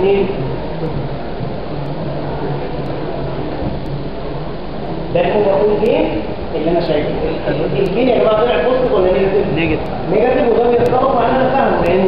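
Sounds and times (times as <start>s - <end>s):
faint low hum: 0.0s - 12.0s
room noise hiss: 0.0s - 12.0s.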